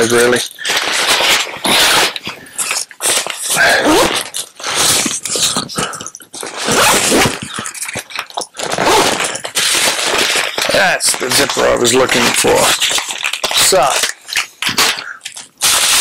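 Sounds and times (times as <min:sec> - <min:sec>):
nylon backpack fabric rustling: 0:08.6 - 0:11.7.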